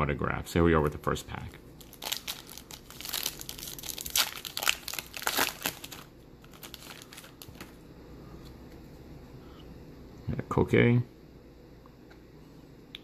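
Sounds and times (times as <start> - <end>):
foil wrapper tearing and crinkling: 1.8 - 7.7.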